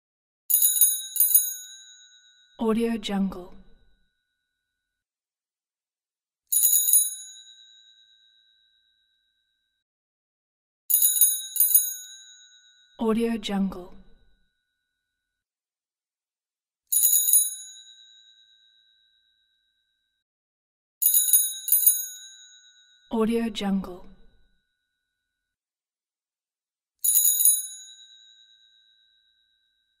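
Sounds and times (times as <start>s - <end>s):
bicycle bell trill: 0.5s - 2.6s, 6.5s - 9.8s, 10.9s - 13.0s, 16.9s - 20.2s, 21.0s - 23.1s, 27.0s - 30.0s.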